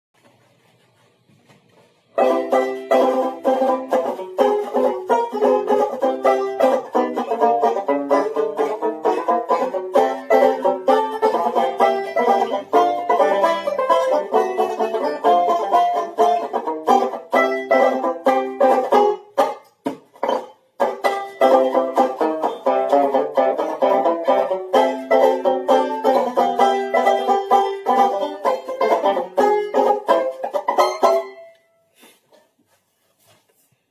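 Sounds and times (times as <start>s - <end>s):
banjo strumming chords: 2.2s - 31.6s.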